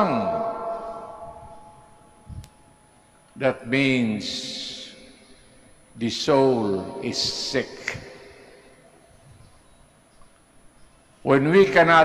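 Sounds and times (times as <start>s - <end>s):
man speaking: 0.0s - 1.0s, 3.4s - 5.1s, 6.0s - 8.3s, 11.3s - 12.0s.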